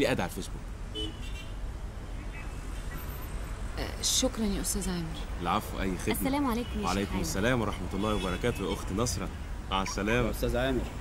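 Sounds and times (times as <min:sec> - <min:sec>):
low rumble of vehicle engines: 0:00.0 - 0:11.0.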